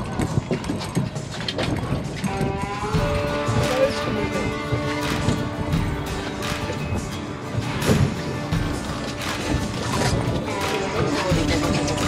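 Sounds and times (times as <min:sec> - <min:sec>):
water rushing along boat hull: 0:00.0 - 0:12.0
wind buffeting microphone: 0:00.0 - 0:12.0.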